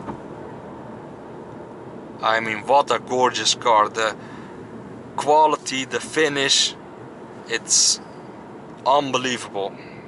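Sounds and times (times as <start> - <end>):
tyre noise inside car cabin: 0.0 - 5.3.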